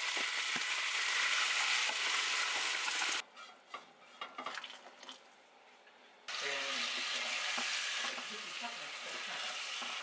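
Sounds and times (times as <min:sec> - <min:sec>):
food sizzling in a frying pan: 0:00.0 - 0:03.2, 0:06.3 - 0:10.0.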